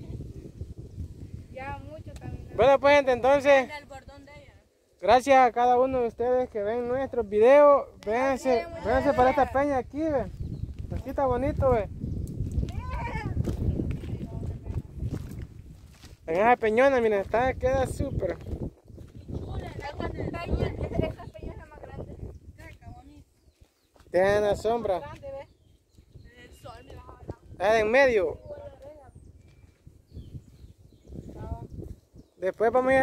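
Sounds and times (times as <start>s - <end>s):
low rumble on microphone: 0.0s - 3.3s, 8.9s - 16.4s, 17.2s - 23.0s, 25.4s - 32.4s
footsteps on rock: 12.4s - 17.4s.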